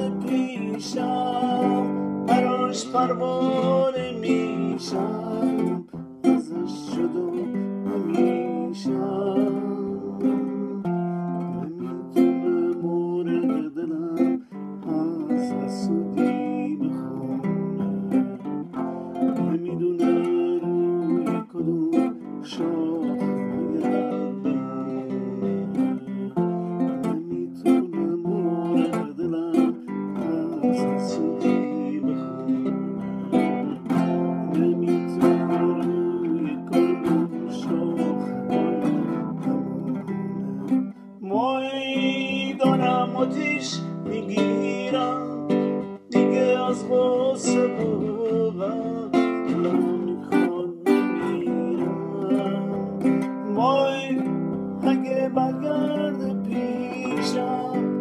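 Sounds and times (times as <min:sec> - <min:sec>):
fingerstyle classical guitar: 0:00.0 - 0:58.0.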